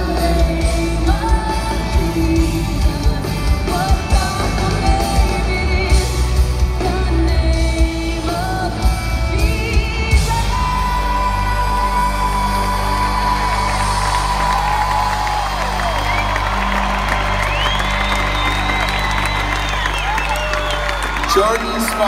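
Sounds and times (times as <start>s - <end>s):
crowd cheering: 11.7s - 22.0s
people whooping: 12.6s - 22.0s.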